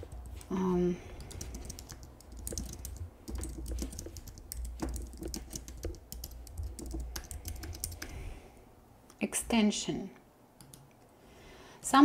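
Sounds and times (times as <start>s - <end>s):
computer keyboard typing: 0.0s - 8.2s, 10.6s - 10.9s.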